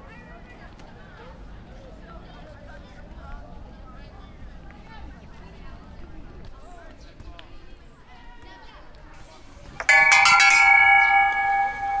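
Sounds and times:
bell-like chime: 9.8 - 12.0.

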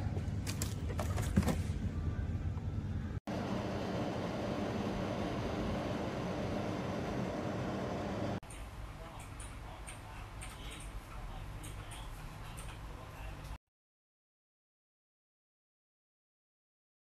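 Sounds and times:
air purifier fan whooshing: 3.3 - 8.4.

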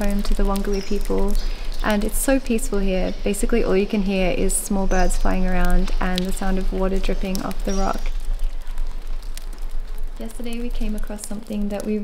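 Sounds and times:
steady low rumble: 0.0 - 12.0
water dripping in cave: 0.0 - 12.0.

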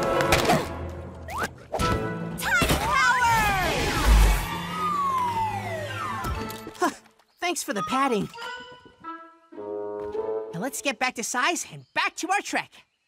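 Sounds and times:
cartoon soundtrack music: 0.0 - 6.8, 7.6 - 11.0
gliding whistle-like tones: 4.0 - 6.4.

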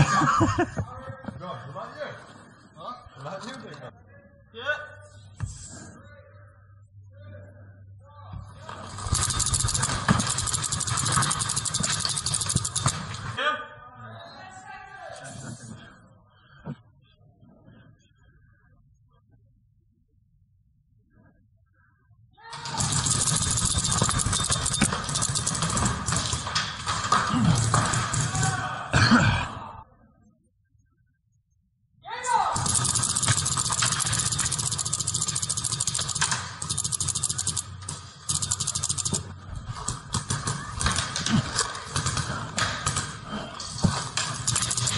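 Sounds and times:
paintball marker rapid firing: 8.9 - 13.2, 22.6 - 28.3, 32.6 - 43.2, 44.0 - 44.9.

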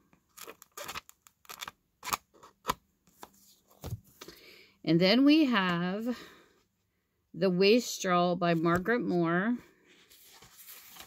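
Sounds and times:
book pages rustling: 0.2 - 4.3, 9.9 - 11.0.

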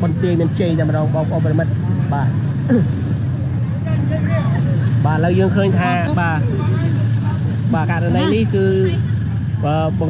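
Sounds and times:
motor scooters rumbling: 0.0 - 10.0
people talking: 0.0 - 10.0.

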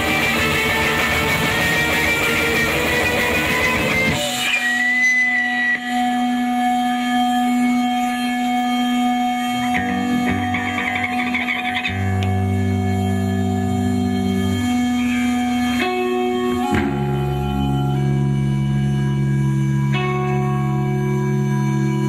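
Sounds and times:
live rock band playing: 0.0 - 13.1
electric guitar drone: 0.0 - 22.0
low sustained notes: 0.0 - 22.0.

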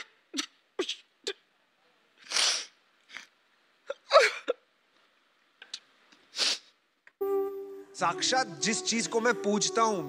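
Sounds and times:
person sobbing: 3.9 - 4.6.

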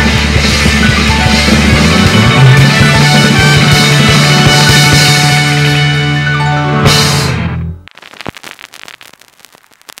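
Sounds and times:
crackling and popping: 7.8 - 10.0.

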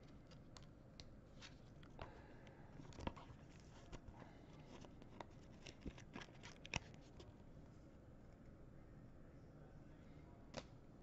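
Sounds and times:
trading cards and wrappers rustling: 2.8 - 7.3.

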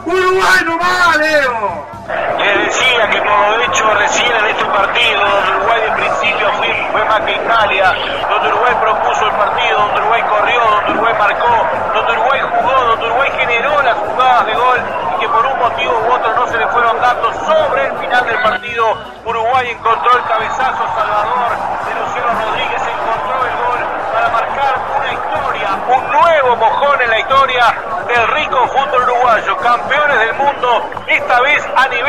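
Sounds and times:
voices talking over one another: 0.0 - 32.0.

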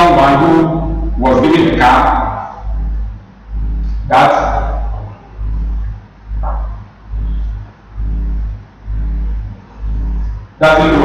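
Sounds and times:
pulsing low buzzing hum: 0.0 - 11.0.

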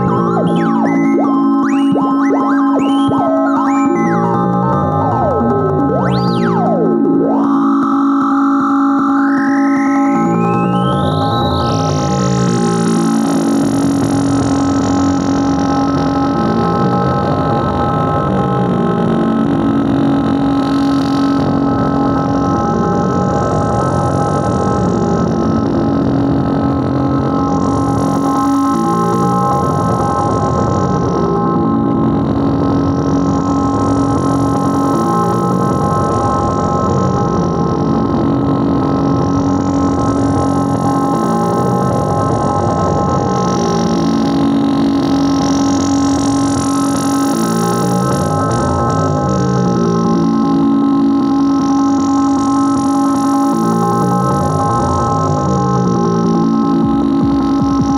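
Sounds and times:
high held synth tones: 0.0 - 12.1
low drone: 0.0 - 14.3.

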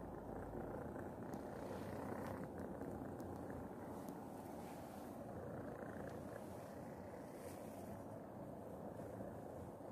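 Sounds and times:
cat purring: 0.0 - 9.9.

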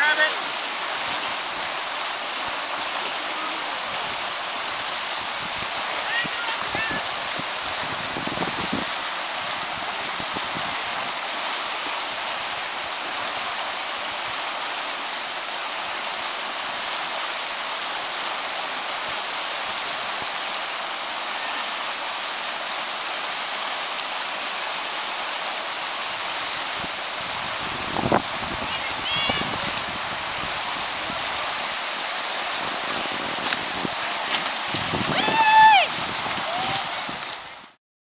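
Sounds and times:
river rapids rushing: 0.0 - 37.8.

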